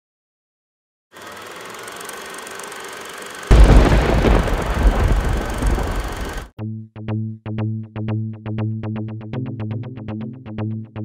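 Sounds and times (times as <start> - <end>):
deep rumbling boom: 3.5 - 6.4.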